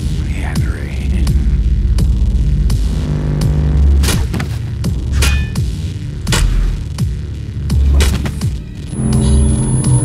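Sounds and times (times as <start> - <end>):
deep throbbing bass hum: 0.0 - 10.0.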